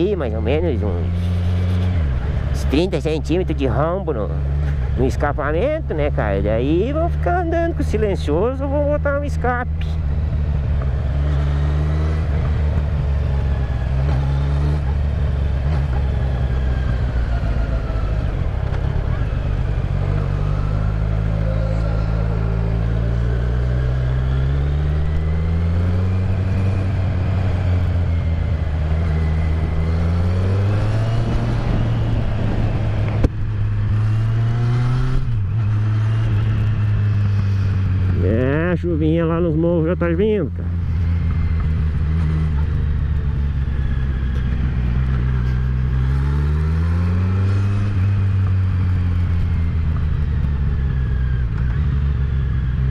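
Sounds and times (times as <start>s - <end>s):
motorcycle engine running: 0.0s - 52.9s.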